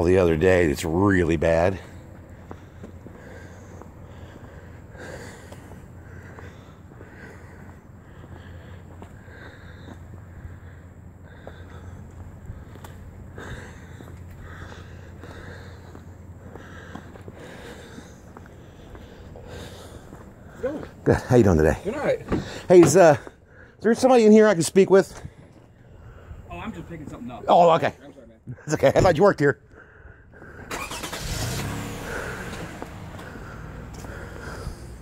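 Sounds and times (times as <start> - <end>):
steady low rumble: 0.3 - 23.9, 25.1 - 27.4
footsteps on wet asphalt: 0.9 - 24.1, 31.3 - 35.0
person breathing: 1.8 - 21.0, 22.3 - 23.8, 25.1 - 26.6, 29.6 - 35.0.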